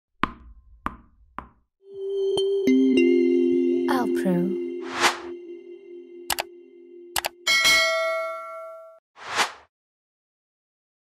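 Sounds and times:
steady tone: 4.5s - 7.5s.

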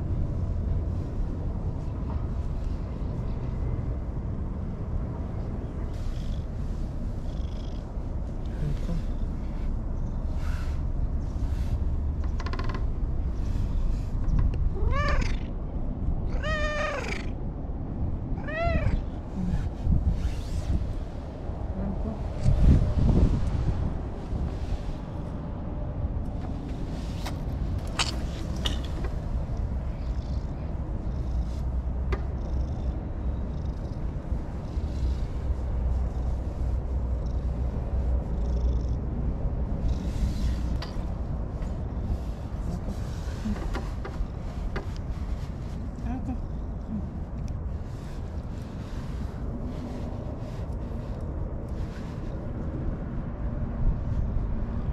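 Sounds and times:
steady low rumble: 0.0s - 54.9s
cat meowing: 14.7s - 15.5s, 16.3s - 17.3s, 18.4s - 19.1s.

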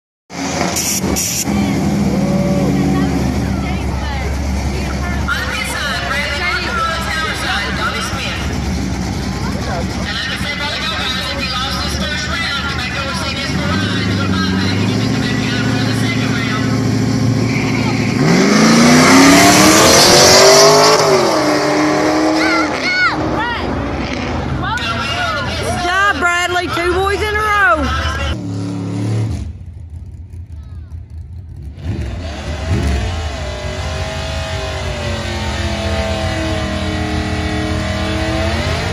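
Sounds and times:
car engine revving and accelerating: 0.3s - 29.7s, 31.4s - 38.9s
onlookers talking: 1.3s - 28.4s.

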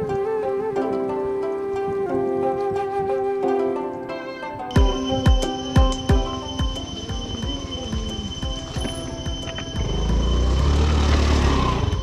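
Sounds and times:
scooter engine revving: 6.3s - 12.0s.

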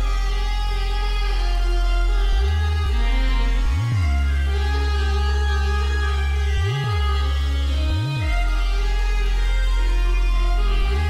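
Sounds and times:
low swooping bass sound: 0.0s - 11.0s
steady deep bass: 0.0s - 11.0s
sustained synth chords: 0.0s - 11.0s.

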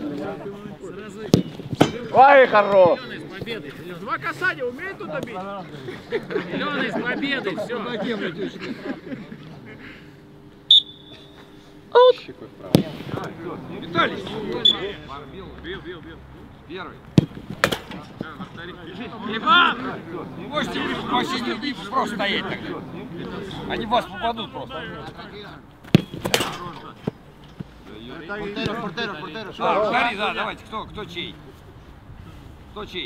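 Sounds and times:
high-pitched whistle blast: 10.7s - 11.4s
football kicked hard: 25.9s - 26.5s.

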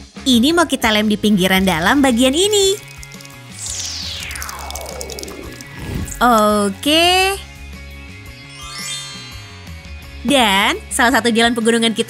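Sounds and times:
background music: 0.0s - 12.0s
falling pitch glide: 3.5s - 6.4s.

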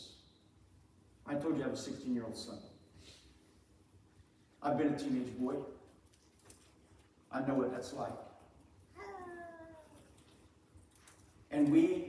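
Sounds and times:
high-pitched vocal cry: 9.0s - 10.1s.

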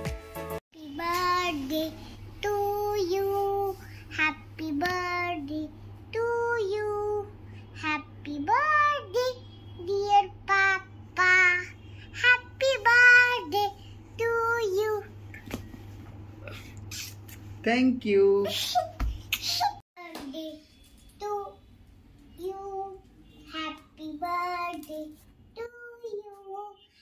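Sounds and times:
background music: 0.0s - 0.6s
girl singing in a high voice: 0.8s - 15.1s, 20.0s - 21.6s, 22.3s - 27.0s.

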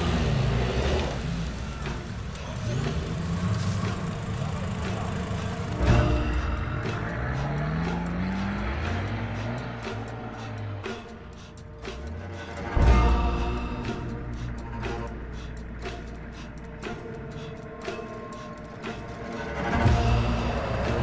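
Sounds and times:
background music: 0.0s - 21.0s
off-road engines revving: 0.0s - 21.0s
vehicles driving through mud: 0.0s - 21.0s.

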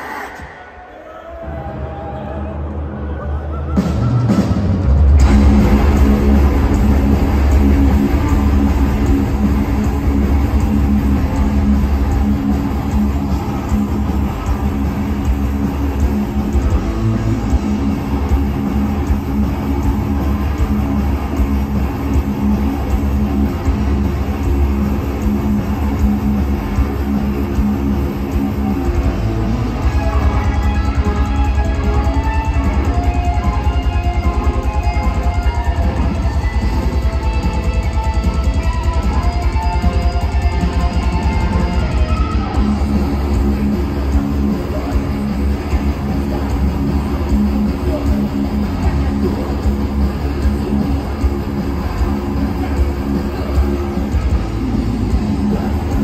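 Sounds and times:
drums: 0.0s - 56.0s
distorted electric guitars: 3.5s - 56.0s
bass guitar: 3.7s - 56.0s.

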